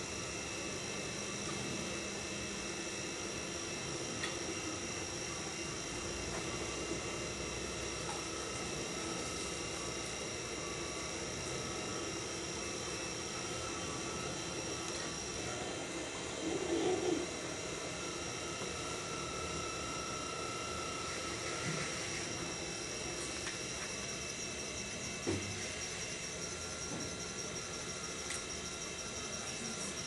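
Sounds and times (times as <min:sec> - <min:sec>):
potter's wheel motor humming: 0:00.0 - 0:30.0.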